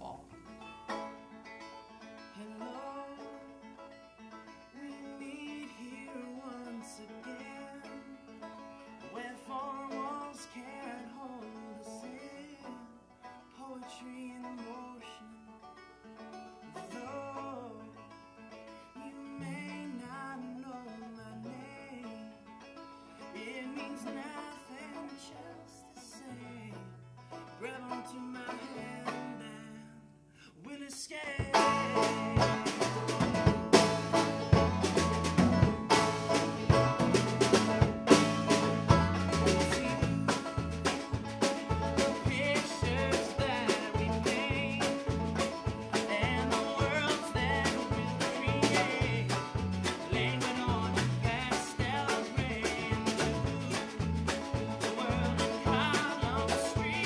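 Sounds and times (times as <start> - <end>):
mandolin and banjo melody: 0.0 - 57.0
electric bass notes: 31.4 - 57.0
full band with drum kit: 31.4 - 57.0.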